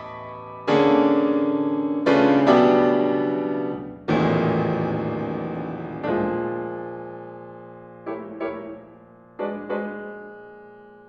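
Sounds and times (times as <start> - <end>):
piano sustained chords: 0.0 - 11.0.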